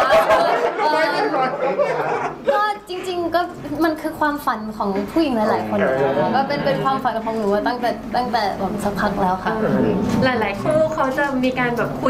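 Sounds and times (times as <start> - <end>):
voices chattering: 0.0 - 3.6, 5.1 - 12.0
woman talking: 2.4 - 12.0.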